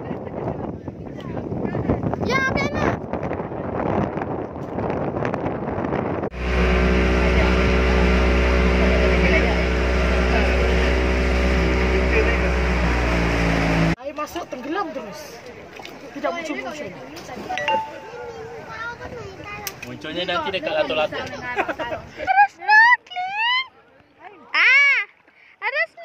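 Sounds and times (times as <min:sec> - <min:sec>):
outdoor noise at jetty: 0:00.0 - 0:26.0
wind: 0:00.0 - 0:26.0
water noise: 0:04.6 - 0:23.6
motorboat engine running: 0:06.3 - 0:14.0.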